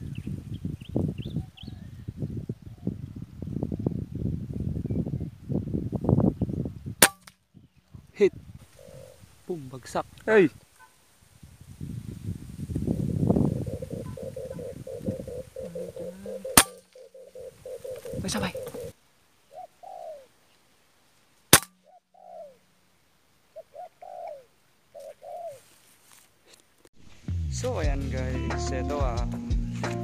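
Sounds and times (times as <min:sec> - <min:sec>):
air rifle shots: 0:07.0 - 0:07.3, 0:16.6 - 0:17.0, 0:21.5 - 0:21.8
doves calling: 0:07.6 - 0:11.2, 0:12.5 - 0:20.8, 0:21.5 - 0:22.8, 0:23.4 - 0:26.2.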